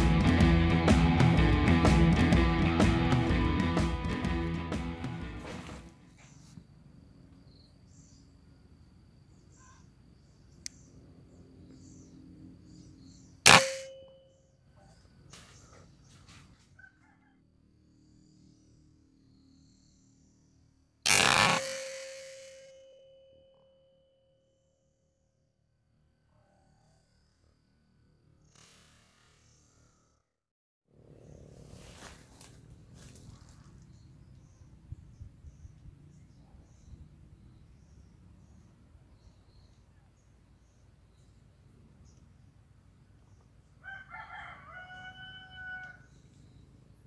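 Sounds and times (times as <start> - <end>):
rooster crowing: 16.8 - 17.5, 43.8 - 46.2.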